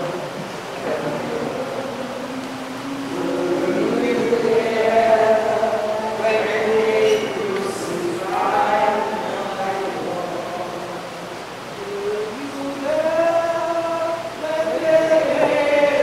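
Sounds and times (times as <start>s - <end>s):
people singing a slow hymn: 0.0s - 16.0s.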